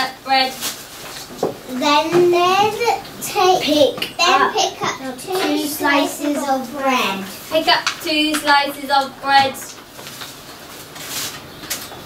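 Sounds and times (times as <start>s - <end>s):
plastic bag rustling: 0.0s - 12.0s.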